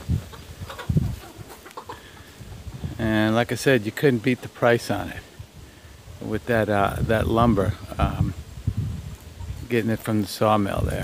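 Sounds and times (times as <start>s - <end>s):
chickens clucking: 0.0s - 8.3s, 8.9s - 10.9s.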